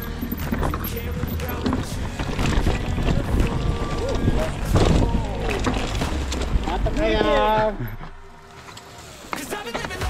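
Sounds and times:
bike knocking and rattling: 0.0s - 10.0s
bike tyres rumbling on dirt: 0.0s - 10.0s.

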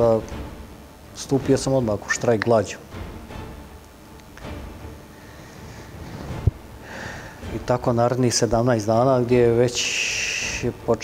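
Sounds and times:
man breathing: 5.1s - 7.5s.

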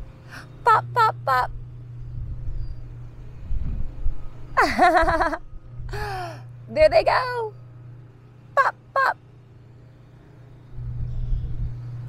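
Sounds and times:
wind buffeting microphone: 1.6s - 6.0s.

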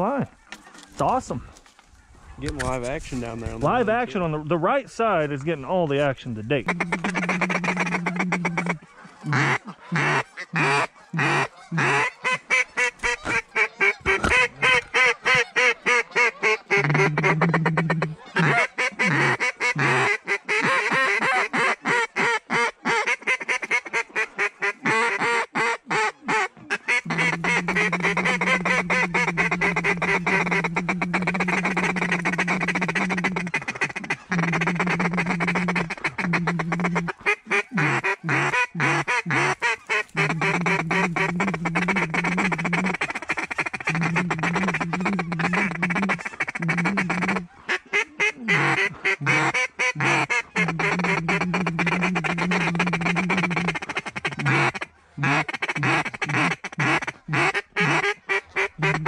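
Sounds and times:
duck calls chuckling and quacking: 6.6s - 59.0s.

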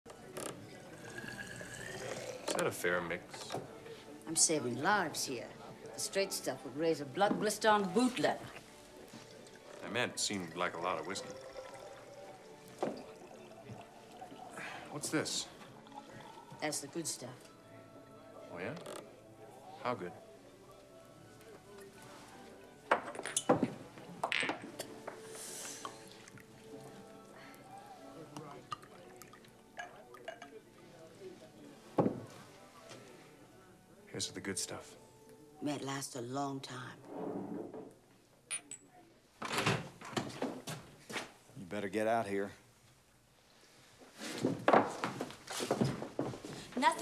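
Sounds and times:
liquid pouring into glass bottle: 0.9s - 2.8s, 8.4s - 17.0s, 28.5s - 30.6s.

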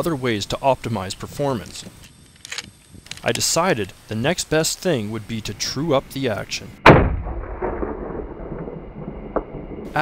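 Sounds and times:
rifle shot echo: 6.8s - 10.0s.

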